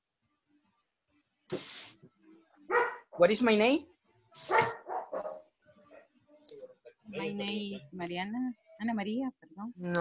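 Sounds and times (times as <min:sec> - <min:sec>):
dog barking: 0:02.7 - 0:03.2, 0:04.4 - 0:05.5.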